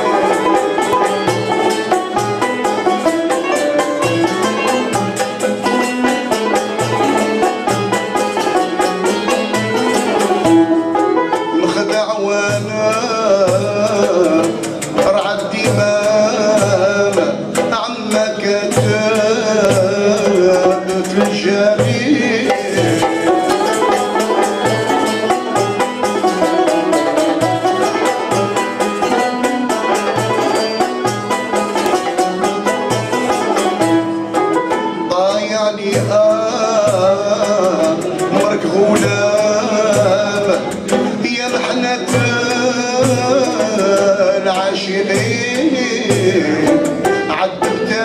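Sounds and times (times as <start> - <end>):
bowed violins: 0.0 - 15.4, 19.1 - 48.0
frame drum: 0.0 - 48.0
plucked lutes: 0.0 - 48.0
man singing: 11.5 - 24.4, 35.0 - 48.0.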